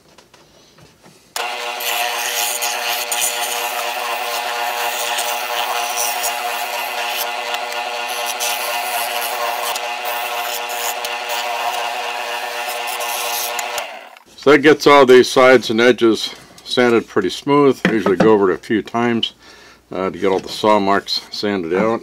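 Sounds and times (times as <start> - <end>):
sanding wood: 1.4 - 14.0
spindle sander motor hum: 1.4 - 14.2.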